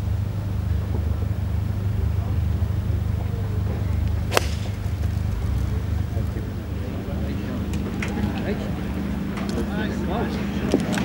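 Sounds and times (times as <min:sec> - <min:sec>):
steady low rumble: 0:00.0 - 0:11.0
golf club striking ball: 0:04.3 - 0:05.7.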